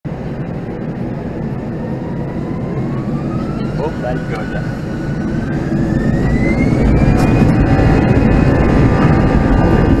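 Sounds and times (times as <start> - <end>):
jet engine whine: 0.1 - 10.0
low engine rumble: 0.1 - 10.0.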